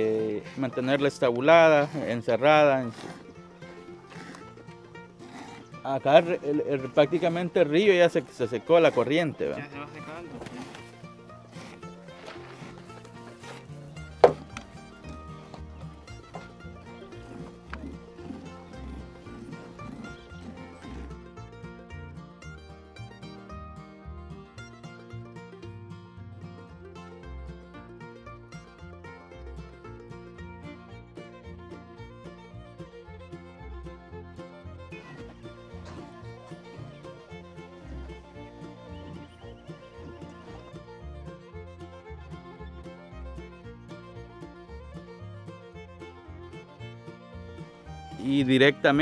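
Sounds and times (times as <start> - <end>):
instrumental background music: 0.0 - 49.0.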